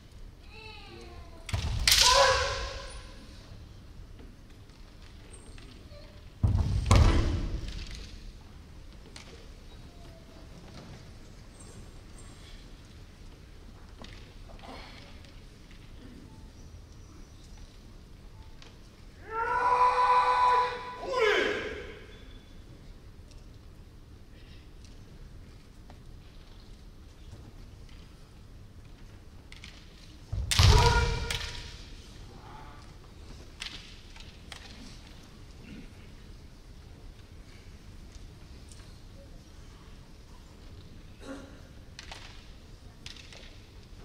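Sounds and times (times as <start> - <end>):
long loud shout: 1.9 - 3.0, 19.2 - 22.0
loud thump: 6.4 - 7.6
short falling yell: 19.2 - 22.0.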